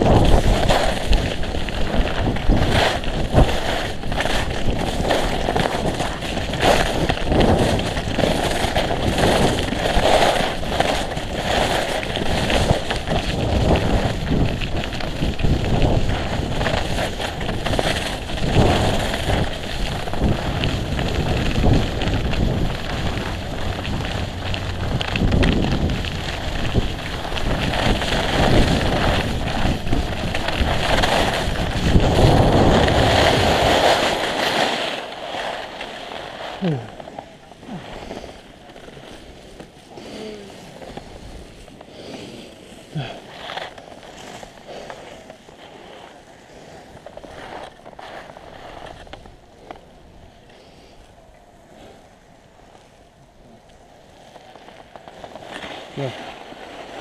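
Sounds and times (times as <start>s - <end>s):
wind buffeting microphone: 0.0s - 34.2s
skis scraping over snow: 0.0s - 57.0s.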